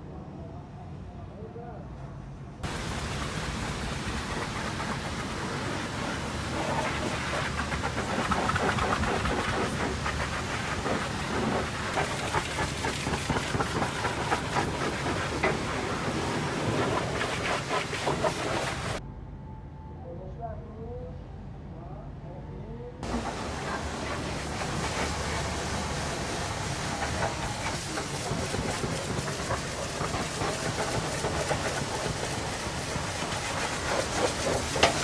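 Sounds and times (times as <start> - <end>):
pressure washer spraying metal: 2.6 - 19.0, 23.0 - 35.0.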